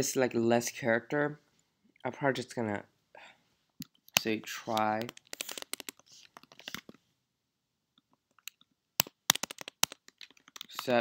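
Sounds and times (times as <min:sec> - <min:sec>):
computer keyboard typing: 0:04.2 - 0:06.8, 0:08.3 - 0:11.0.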